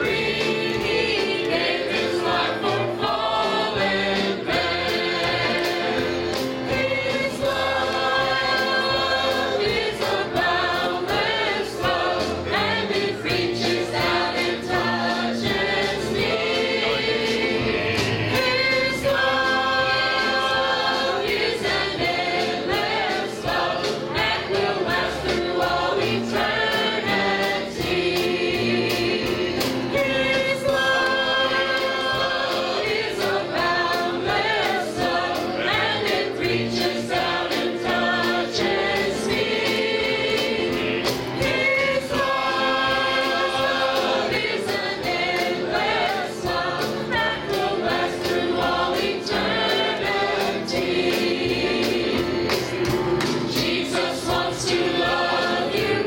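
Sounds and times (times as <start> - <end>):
choir singing gospel song: 0.0 - 56.0.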